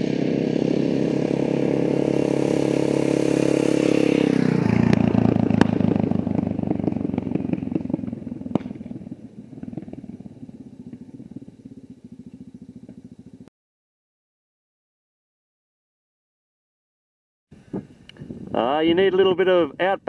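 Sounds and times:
motorcycle engine passing: 0.0s - 13.5s.

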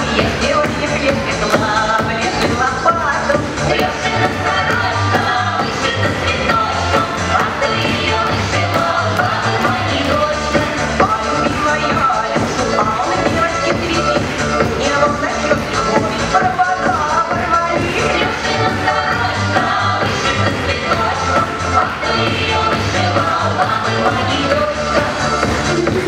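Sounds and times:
upbeat dance music: 0.0s - 26.0s.

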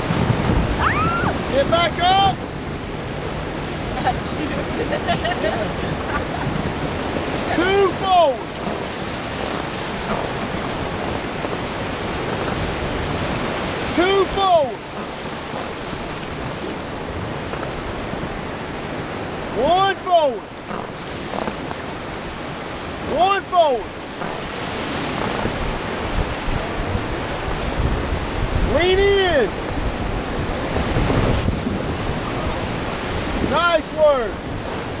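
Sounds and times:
wind on microphone: 0.0s - 19.6s, 20.4s - 23.1s, 23.8s - 35.0s
whitewater rapids rushing: 0.0s - 35.0s.

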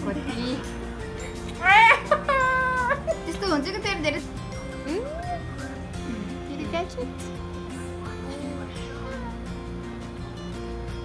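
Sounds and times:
infant squealing: 4.9s - 5.8s.

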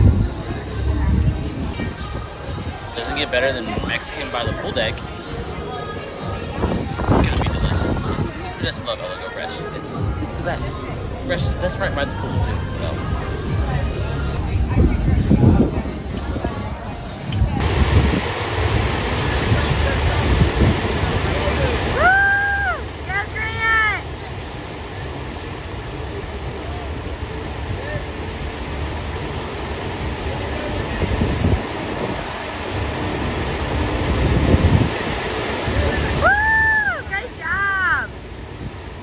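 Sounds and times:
water rushing steadily: 0.0s - 39.0s.

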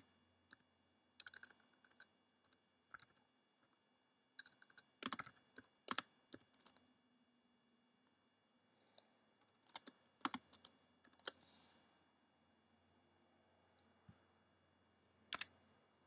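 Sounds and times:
typing on computer keyboard: 1.2s - 3.2s, 4.4s - 6.8s, 9.4s - 11.4s.

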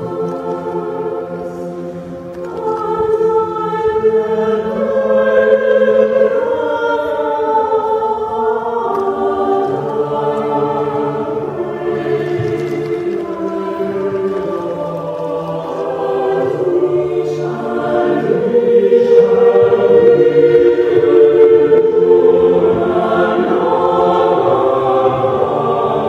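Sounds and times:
choir singing unaccompanied: 0.0s - 26.0s.

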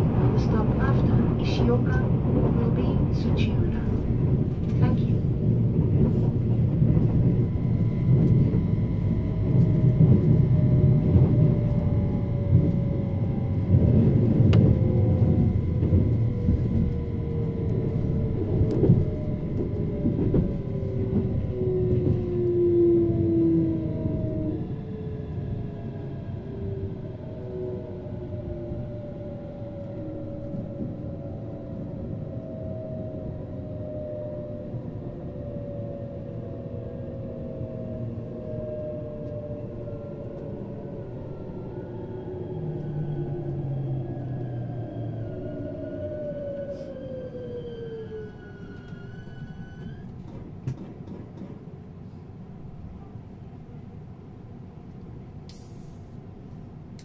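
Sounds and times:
train wheels on rails: 48.3s - 52.3s.

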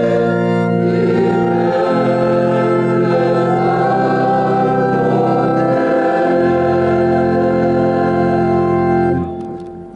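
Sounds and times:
choir singing a hymn: 0.0s - 9.3s
organ accompaniment: 0.0s - 9.9s.

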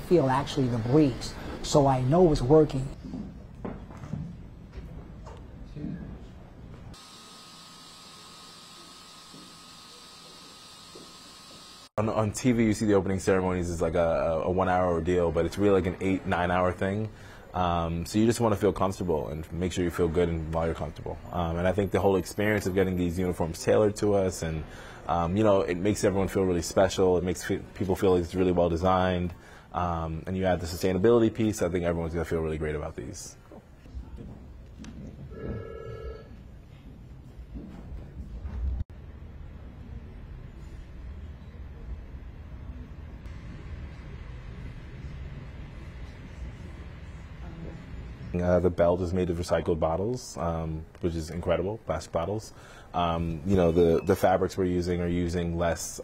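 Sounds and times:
small fan hissing and whining: 7.0s - 11.9s.

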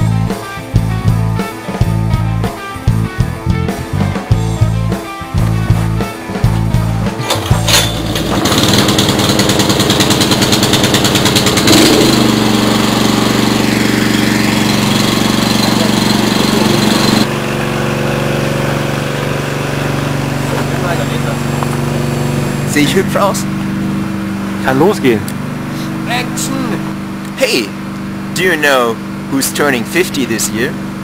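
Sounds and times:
guitar and drum music: 0.0s - 29.3s
engine humming: 0.0s - 31.0s.

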